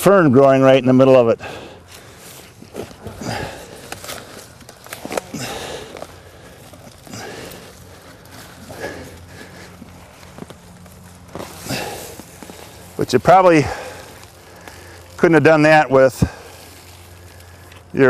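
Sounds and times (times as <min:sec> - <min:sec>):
trowel digging through soil and roots: 0:01.9 - 0:18.0.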